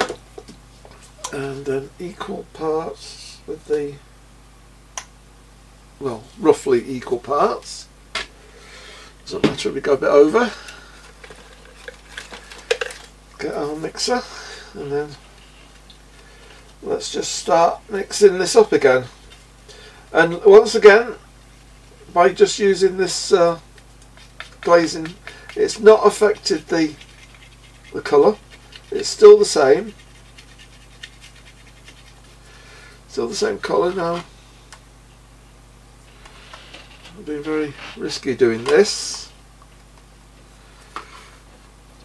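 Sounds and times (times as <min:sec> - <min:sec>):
palette knife scraping paint: 0:24.1 - 0:32.4.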